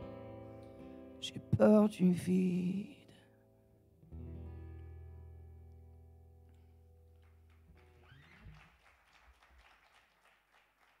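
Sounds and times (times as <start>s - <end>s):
acoustic guitar chord ringing: 0.0s - 6.5s
faint hand claps: 6.5s - 11.0s.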